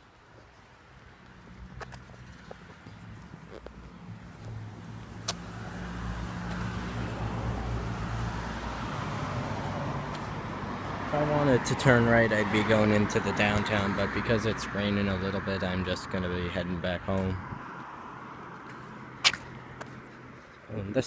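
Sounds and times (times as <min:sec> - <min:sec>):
car engine and tyre noise: 0:00.0 - 0:21.0.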